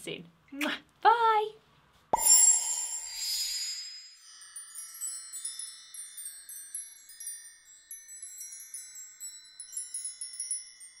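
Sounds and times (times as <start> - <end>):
twinkling high-pitched chimes: 2.2 - 11.0.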